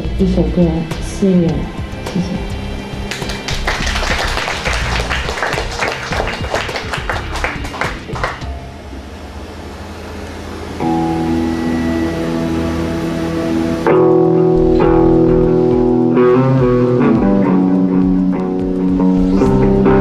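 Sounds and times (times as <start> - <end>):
amplified sustained chord: 0.0 - 20.0
low amplifier hum: 0.0 - 20.0
audience clapping: 3.1 - 8.5.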